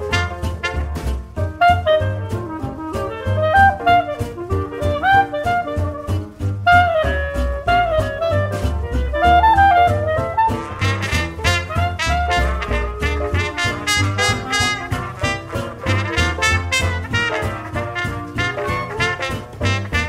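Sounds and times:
up-tempo swing jazz: 0.0 - 20.0.

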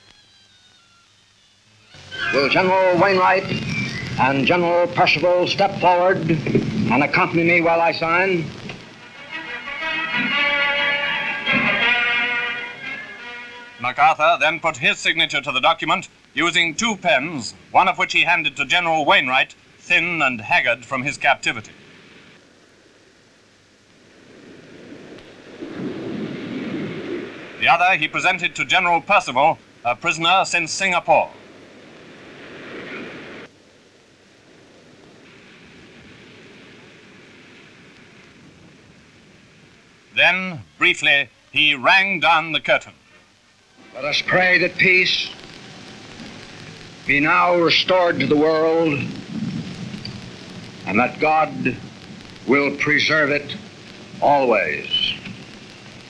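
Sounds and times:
recording hiss and crackle: 0.0 - 56.0
rumbling noise on film soundtrack: 0.0 - 56.0
low rumble: 2.0 - 10.2, 43.8 - 56.0
man speaking: 2.2 - 3.6, 4.2 - 8.6, 13.8 - 21.8, 27.6 - 31.3, 40.2 - 43.0, 43.9 - 45.4, 47.1 - 49.2, 50.9 - 51.8, 52.4 - 53.6, 54.2 - 55.2.

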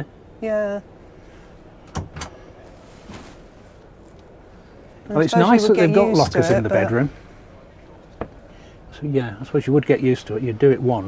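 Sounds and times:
background murmur: 0.0 - 11.0
faint shuffle: 2.4 - 5.1.

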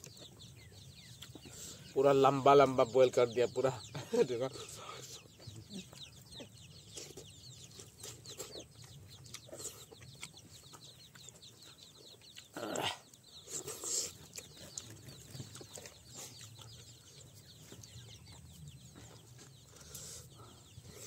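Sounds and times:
soft chewing: 0.0 - 1.9, 4.5 - 21.0
birds chirping: 0.0 - 21.0.

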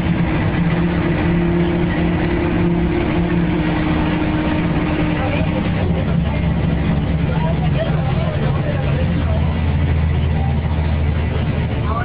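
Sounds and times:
bus diesel engine running: 0.0 - 12.0
indistinct voices: 0.0 - 12.0.

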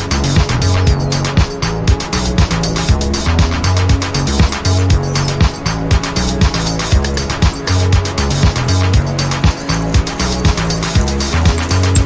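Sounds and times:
music with drum beat and bass: 0.0 - 12.0.

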